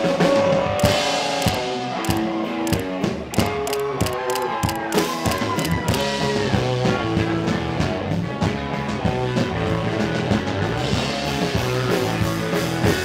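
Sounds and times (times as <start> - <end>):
drum-kit beat: 0.8 - 6.2.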